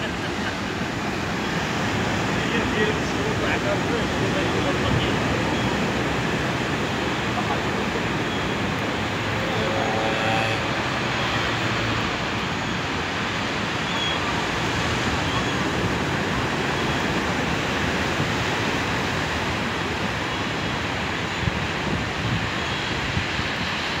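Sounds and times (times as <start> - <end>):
wind: 0.0 - 24.0.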